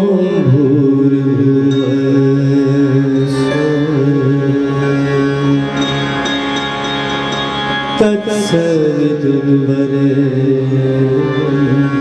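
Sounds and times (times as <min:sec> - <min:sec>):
man singing a long note: 0:00.0 - 0:06.3, 0:08.0 - 0:12.0
harmonium playing chords: 0:00.0 - 0:12.0.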